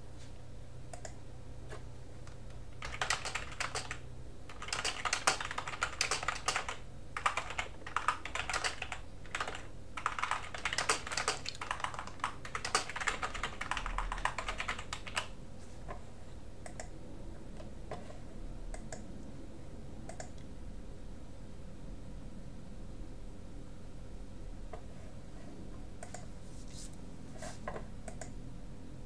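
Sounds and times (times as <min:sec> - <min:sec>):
computer keyboard typing: 0:00.9 - 0:01.2, 0:02.2 - 0:15.4, 0:20.1 - 0:20.4, 0:26.0 - 0:26.3, 0:28.0 - 0:28.4.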